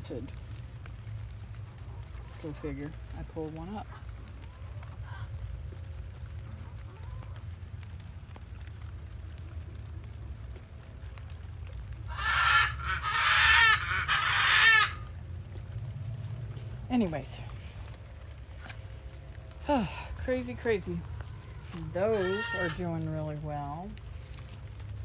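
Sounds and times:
steady low rumble: 0.0s - 25.0s
poultry calling: 12.1s - 15.1s, 21.2s - 23.2s.

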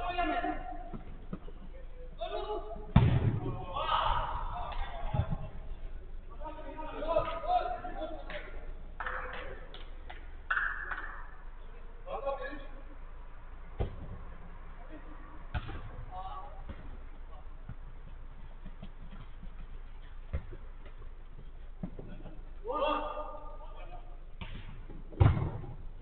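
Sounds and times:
players shouting: 2.2s - 5.2s
football kick thuds: 2.9s - 3.6s, 24.4s - 25.8s.

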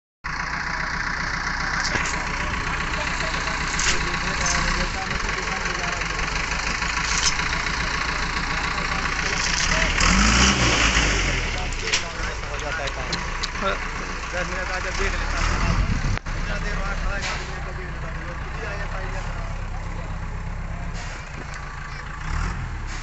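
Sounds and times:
heavy vehicle engine running: 0.2s - 23.0s
people talking: 1.7s - 22.3s.

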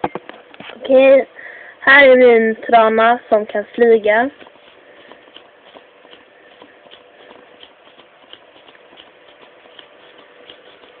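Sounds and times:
folded paper clicking and crinkling: 4.1s - 11.0s.

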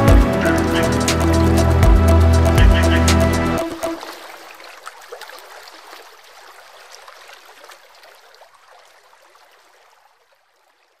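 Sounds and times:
water splashing rush: 0.0s - 9.9s.

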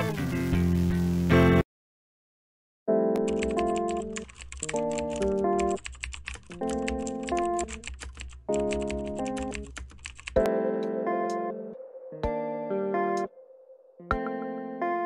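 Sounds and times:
held keyboard chords music: 2.9s - 13.3s, 14.0s - 15.0s
rapid keyboard typing: 3.2s - 10.5s.

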